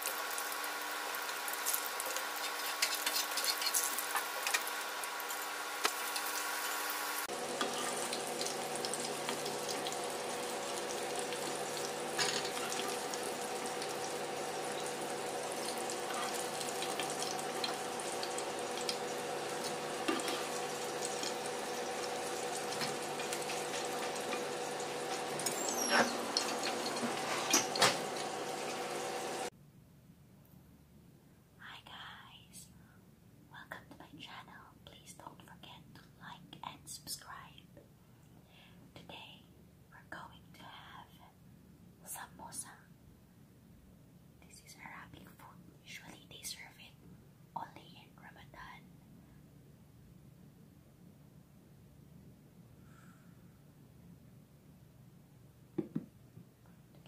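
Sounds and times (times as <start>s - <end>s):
food sizzling in oil: 0.0s - 29.5s
woman whispering: 31.6s - 32.8s, 33.5s - 37.7s, 38.9s - 41.4s, 42.0s - 42.9s, 44.4s - 47.0s, 47.6s - 48.9s.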